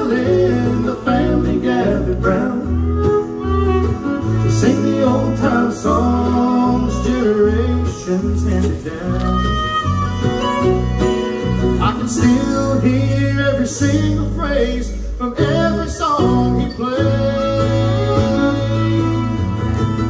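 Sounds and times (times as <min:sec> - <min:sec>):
bass stepping between notes: 0:00.0 - 0:20.0
bluegrass band playing: 0:00.0 - 0:20.0
person singing: 0:04.2 - 0:09.8, 0:11.8 - 0:19.7.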